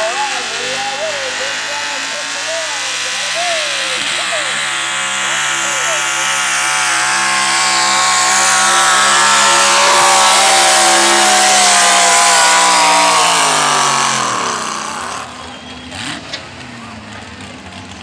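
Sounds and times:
pickup truck engine at high revs: 0.0s - 18.0s.

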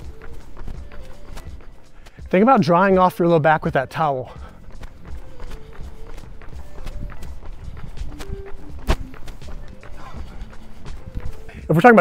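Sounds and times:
running footsteps on asphalt: 0.0s - 12.0s
soft background music: 0.0s - 12.0s
sharp tap: 8.2s - 9.3s.

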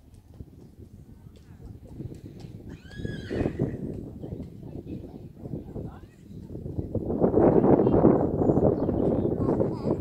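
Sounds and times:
horse whinnying: 2.7s - 3.8s.

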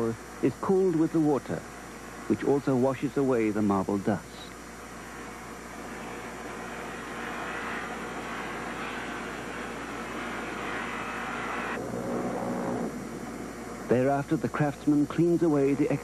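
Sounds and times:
circular saw cutting stone: 5.9s - 11.8s.

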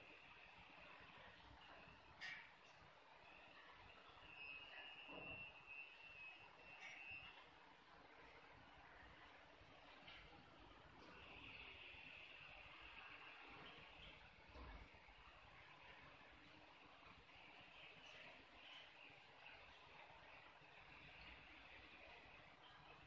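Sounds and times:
faint high steady tone: 0.0s - 23.0s.

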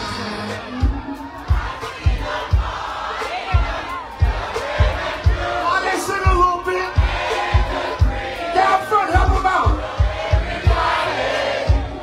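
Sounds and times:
crowd shouting and chanting: 0.0s - 12.0s
steady drum beat: 0.0s - 12.0s.

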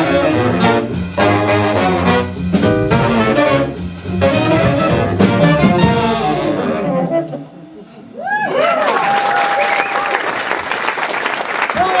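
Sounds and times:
audience applause and cheering: 8.0s - 12.0s
whoops: 8.1s - 10.4s.

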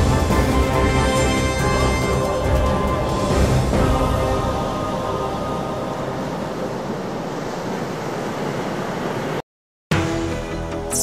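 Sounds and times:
waves rushing: 0.0s - 9.4s
wind at sea: 0.3s - 9.4s.

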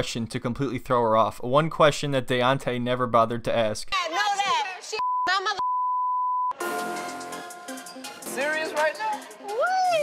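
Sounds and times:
censor bleep: 5.0s - 6.6s
background music: 6.5s - 10.0s
woman swearing: 9.4s - 10.0s.

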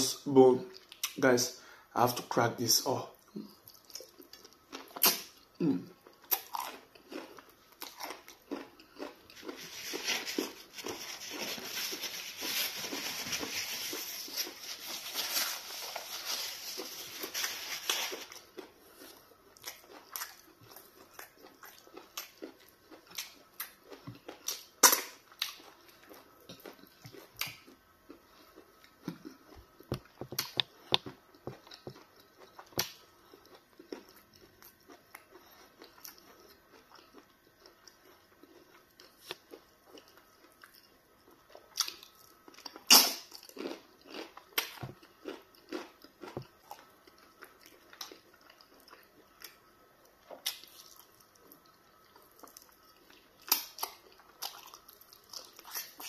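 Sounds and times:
wet chewing of meat: 3.2s - 56.0s.

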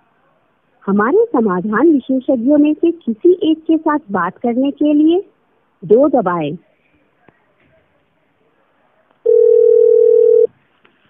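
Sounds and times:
telephone line beep: 9.3s - 10.5s.

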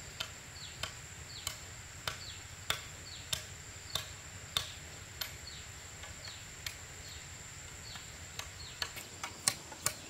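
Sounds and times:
sharp clicks: 0.2s - 5.4s, 7.9s - 10.0s.

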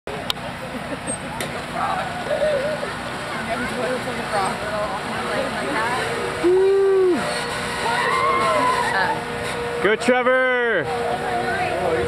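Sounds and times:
steady traffic noise: 0.0s - 12.0s.

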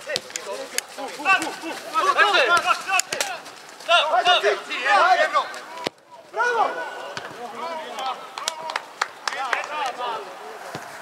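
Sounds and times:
footballers shouting: 0.0s - 11.0s.

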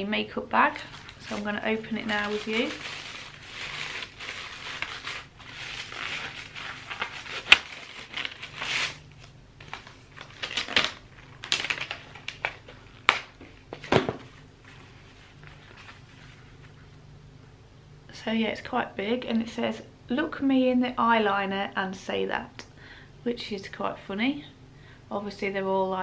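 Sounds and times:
plastic packaging crinkling: 0.7s - 16.8s.

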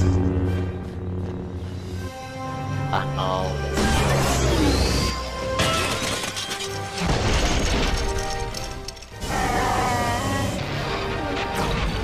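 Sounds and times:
dramatic music: 0.0s - 12.0s
crashing shattering effects: 5.6s - 9.0s.

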